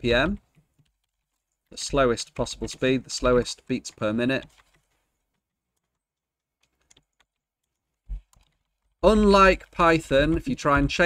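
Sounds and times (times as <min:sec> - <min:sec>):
computer keyboard taps: 0:06.6 - 0:11.0.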